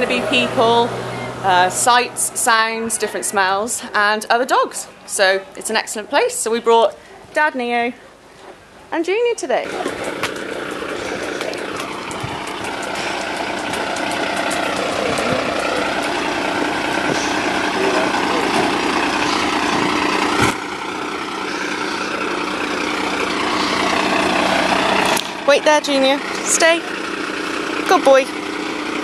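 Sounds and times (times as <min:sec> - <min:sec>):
large engine idling: 0:00.0 - 0:29.0
background voices: 0:09.6 - 0:26.9.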